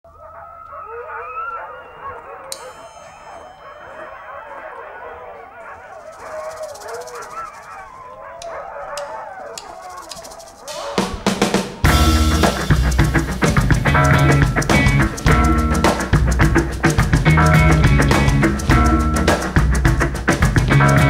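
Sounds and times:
chorus of gliding howls: 0.1s - 11.9s.

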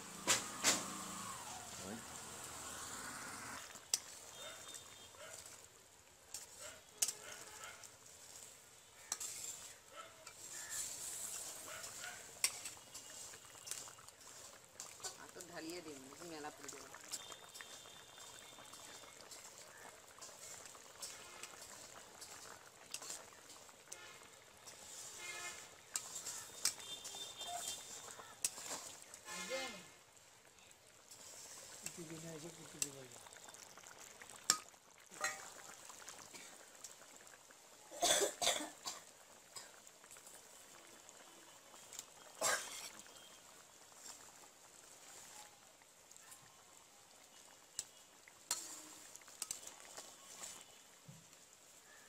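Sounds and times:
curry boiling hiss: 0.0s - 52.0s
metal spatula scraping a pot: 6.3s - 15.5s, 16.7s - 29.7s, 31.1s - 32.1s, 34.5s - 35.6s, 48.5s - 50.8s
metal ladle clinking pot: 9.1s - 13.9s, 34.4s - 35.6s.

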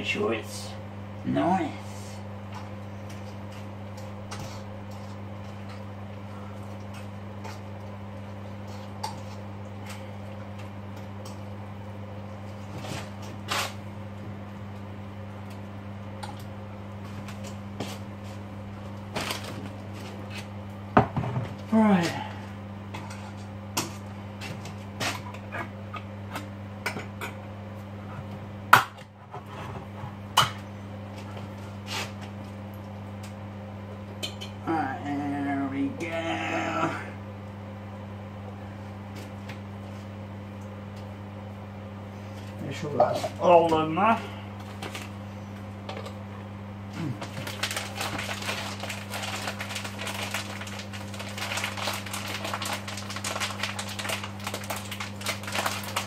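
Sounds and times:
low electrical hum: 0.0s - 56.0s.

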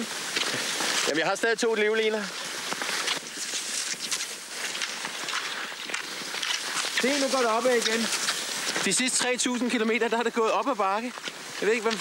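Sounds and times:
ski poles planted in snow: 0.0s - 12.0s
skis swishing in snow: 0.0s - 12.0s.

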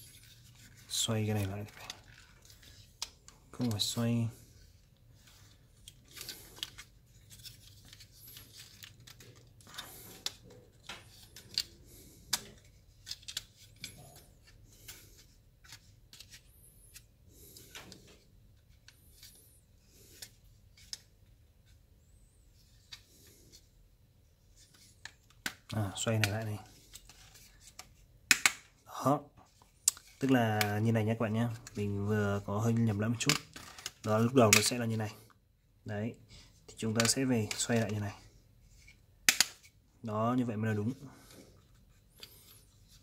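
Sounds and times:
plastic parts rubbing: 0.0s - 23.7s
plastic parts clicking: 5.4s - 14.2s, 33.2s - 34.8s, 36.9s - 37.9s.

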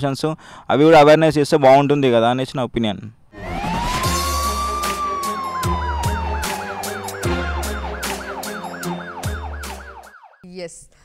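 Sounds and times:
electronic music sting: 3.4s - 10.0s
long tone sliding down: 3.4s - 10.1s
fast warbling siren: 3.4s - 10.5s
deep beat hits: 3.5s - 10.0s.

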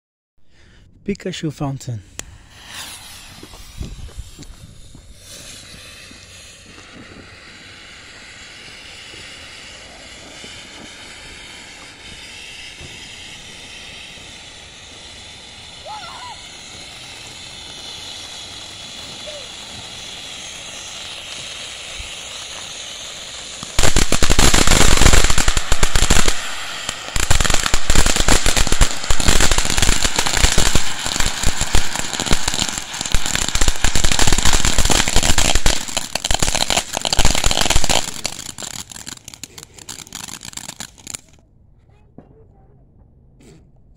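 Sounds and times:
firework fountain hissing and crackling: 1.8s - 41.4s.

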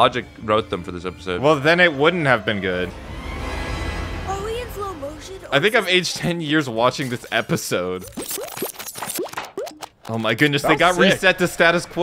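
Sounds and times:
cartoon rising bloops: 8.0s - 9.9s.

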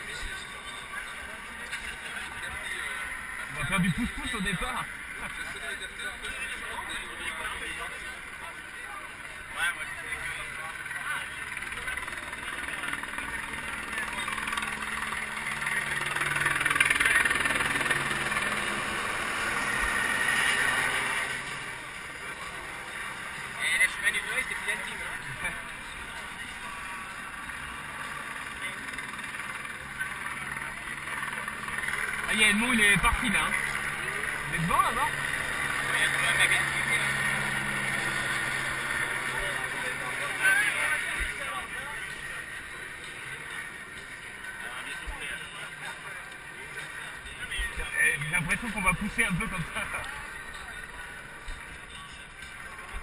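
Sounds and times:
crowd talking: 0.0s - 53.0s.

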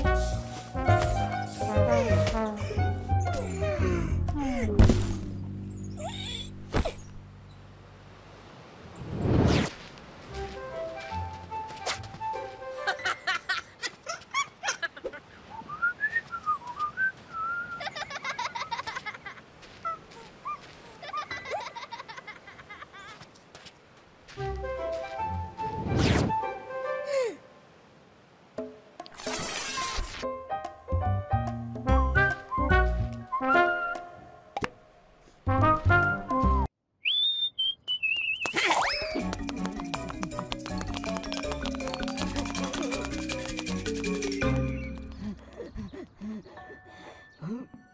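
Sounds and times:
high squeaky chirps: 5.4s - 7.6s, 37.1s - 47.9s
quick swishing sound effect: 9.0s - 9.9s, 25.7s - 26.4s
wavering whistle: 37.0s - 39.2s.

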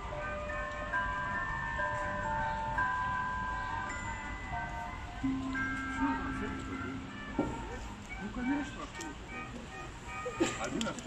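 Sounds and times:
tinkling chime melody: 0.0s - 8.8s.

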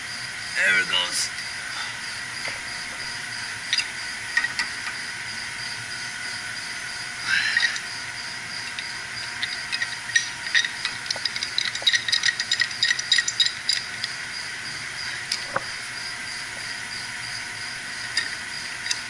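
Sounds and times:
steady hiss with high whine: 0.0s - 19.0s
pipe wrench clicking and scraping: 7.5s - 7.9s, 8.6s - 14.2s, 18.1s - 19.0s.

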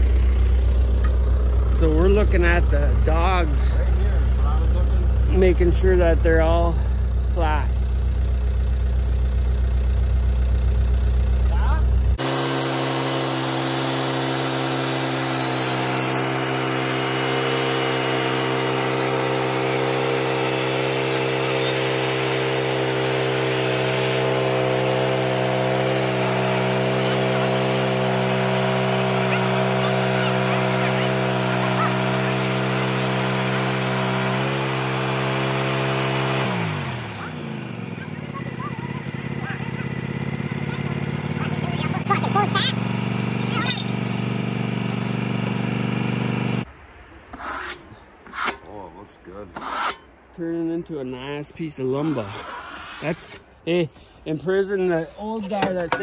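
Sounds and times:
sawmill engine hum: 0.0s - 48.4s
low rumble: 46.7s - 51.5s.

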